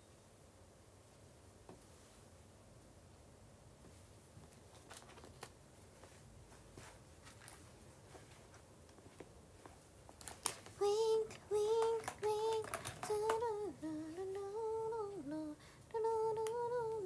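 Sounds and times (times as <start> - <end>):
woman humming: 10.8 - 17.0.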